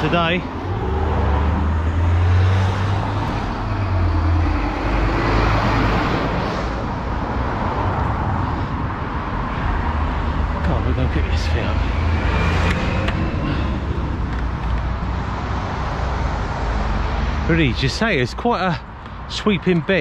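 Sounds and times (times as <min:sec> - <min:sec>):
engine rumble: 0:00.0 - 0:20.0
tyre and road noise: 0:00.0 - 0:20.0.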